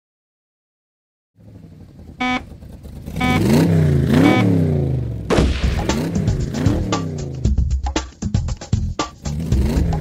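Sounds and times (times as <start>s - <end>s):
racing car engine revving: 1.4s - 7.6s, 9.0s - 10.0s
electronic beep: 2.2s - 2.4s, 3.2s - 3.5s, 4.2s - 4.5s.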